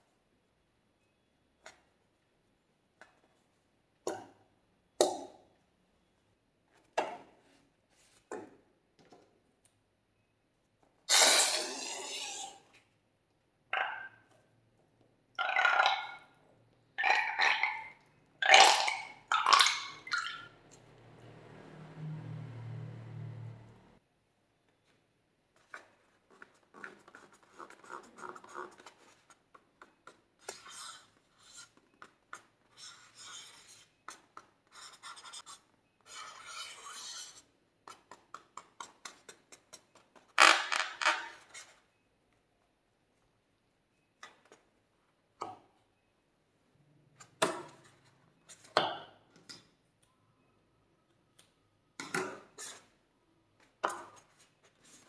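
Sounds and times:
burp-like gurgles of slime from balloon: 11.1 - 12.6.

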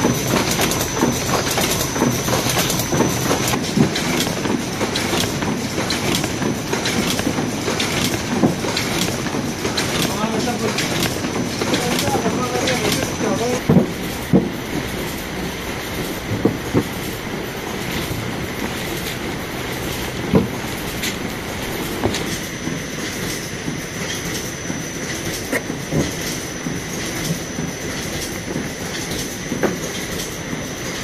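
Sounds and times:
machine clattering: 0.0 - 31.0.

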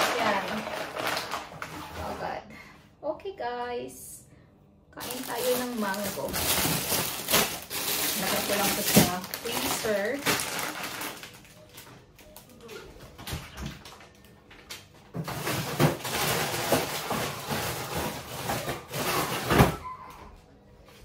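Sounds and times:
plastic packaging rustling: 0.0 - 2.4, 5.0 - 19.8.

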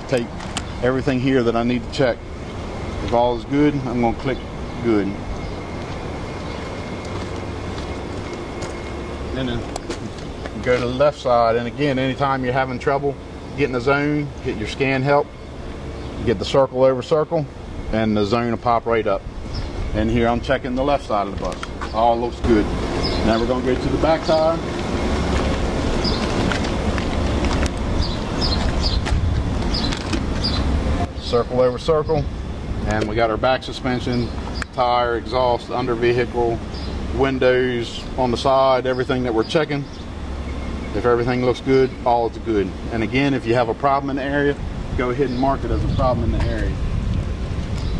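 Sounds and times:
footsteps on pavement: 0.0 - 0.8, 5.3 - 11.1, 20.8 - 22.1, 22.8 - 30.8, 45.3 - 47.9
faint high whine: 0.0 - 28.5
diesel engine idling: 0.0 - 47.8.

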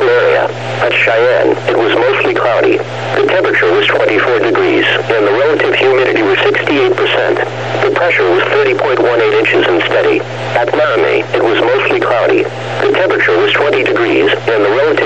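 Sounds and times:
radio announcer speaking: 0.0 - 15.0
steady low hum: 0.0 - 15.0.

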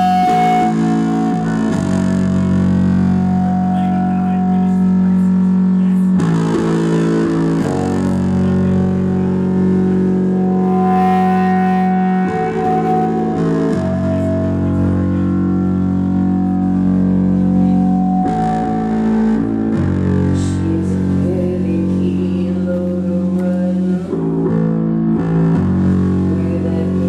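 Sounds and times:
rock band playing distorted music: 0.0 - 21.3
electric bass: 0.0 - 27.0.

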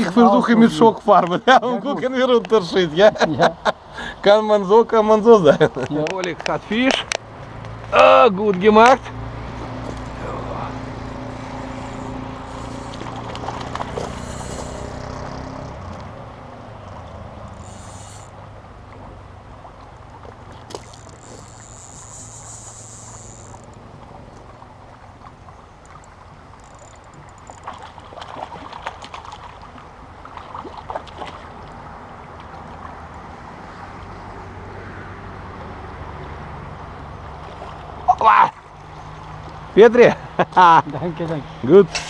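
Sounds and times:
small water splashes: 9.4 - 17.6, 18.3 - 34.1, 37.1 - 39.7.

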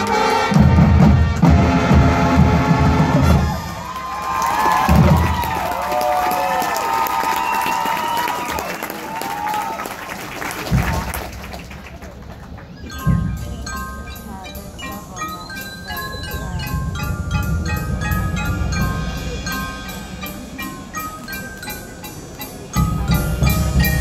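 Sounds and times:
marching band brass: 0.0 - 7.0
bass drums: 0.6 - 3.8, 4.8 - 5.7
crowd cheering: 3.2 - 12.6
voice-like whoops: 3.8 - 9.8.

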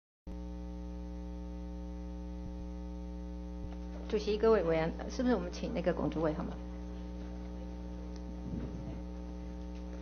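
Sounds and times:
electrical mains hum: 0.3 - 10.0.

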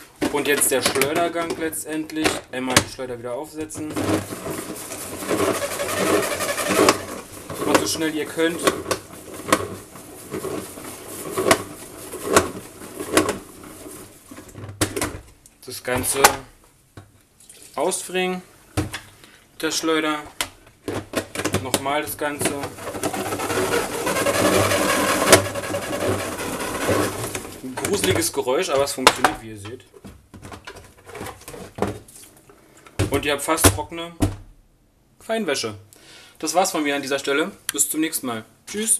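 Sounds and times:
plastic basket rattling in bowl: 3.8 - 14.5, 21.0 - 28.4
salad spinner whirring: 5.4 - 7.2, 22.7 - 27.6.

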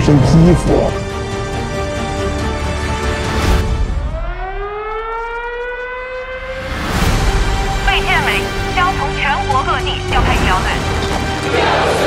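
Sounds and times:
music: 0.0 - 12.0
siren wailing: 3.8 - 7.2.

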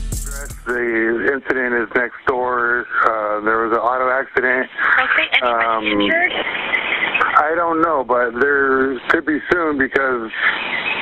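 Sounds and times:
static hiss: 0.1 - 11.0
speech over a radio: 0.3 - 11.0.

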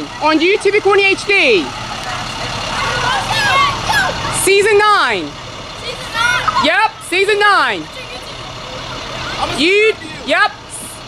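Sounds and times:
bus engine running low: 0.0 - 11.0
children shouting long calls: 1.9 - 4.5, 5.7 - 7.1.

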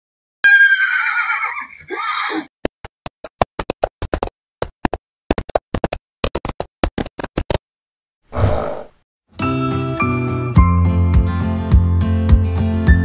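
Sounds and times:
horse whinny: 0.5 - 2.0, 8.4 - 8.9.

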